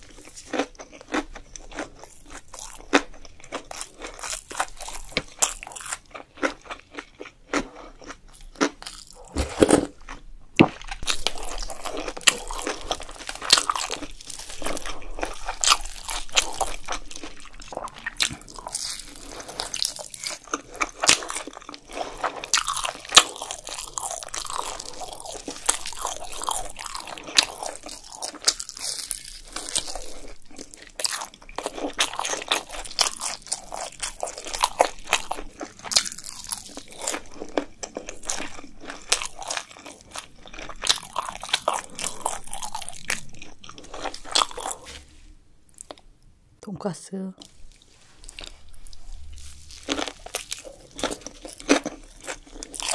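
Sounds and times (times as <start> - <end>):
crunching and chewing fried food: 0.0 - 46.1, 47.4 - 52.9.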